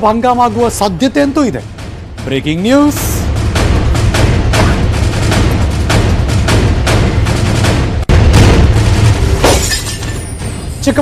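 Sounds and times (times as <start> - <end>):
crash with glass shatter: 9.4 - 10.8.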